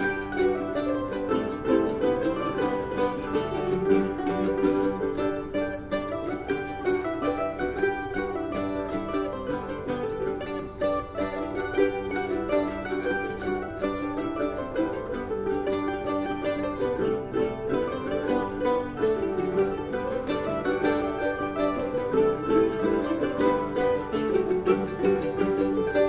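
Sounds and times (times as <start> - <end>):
mandolin orchestra playing: 0.0 - 26.0.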